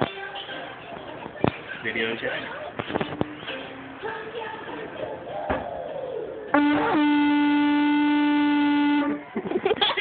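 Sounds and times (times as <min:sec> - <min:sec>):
handheld horn steady tone: 0:06.5 - 0:09.3.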